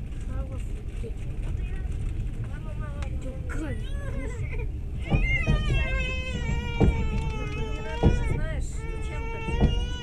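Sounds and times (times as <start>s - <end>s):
low rumble of moving train: 0.0s - 10.0s.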